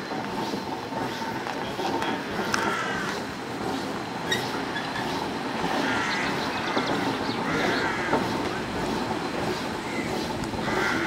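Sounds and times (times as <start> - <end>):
steam roller clatter and rumble: 0.0 - 11.0.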